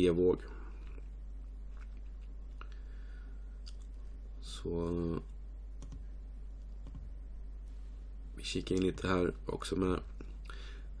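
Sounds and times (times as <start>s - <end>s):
low electrical hum: 0.0s - 11.0s
computer mouse clicks: 5.8s - 6.0s.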